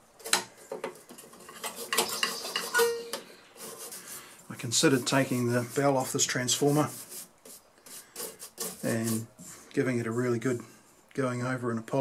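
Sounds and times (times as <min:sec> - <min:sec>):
bristle brush scrubbing metal: 0:01.0 - 0:03.0, 0:03.6 - 0:10.5.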